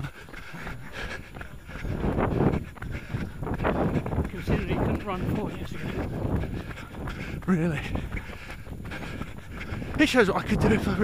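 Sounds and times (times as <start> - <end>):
runner's heavy breathing: 0.0 - 11.0.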